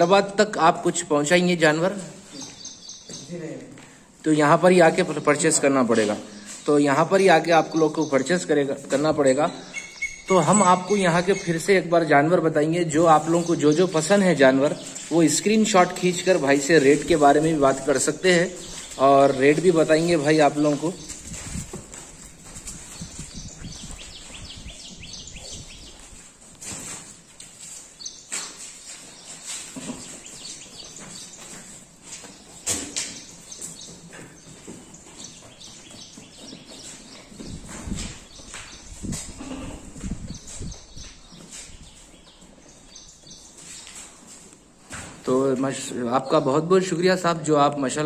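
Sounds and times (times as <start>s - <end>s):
goat hooves on concrete: 0.0s - 45.9s
bird chirping rapidly: 9.2s - 21.6s, 22.8s - 26.0s.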